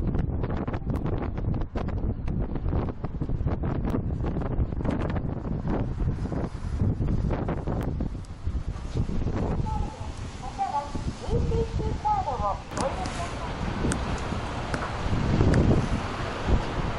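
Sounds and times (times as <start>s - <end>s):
wind buffeting microphone: 0.0s - 16.9s.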